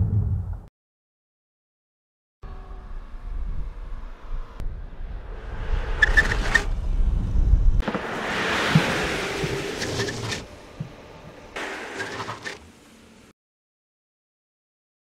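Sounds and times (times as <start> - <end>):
wind rumbling on microphone: 3.3 - 10.9
car driving past: 7.8 - 11.7.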